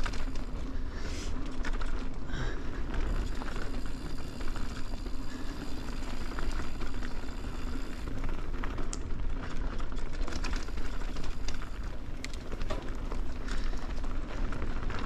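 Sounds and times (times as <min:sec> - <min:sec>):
bike clicks and rattles: 0:00.0 - 0:15.0
mountain bike tyres rolling on dirt: 0:00.0 - 0:15.0.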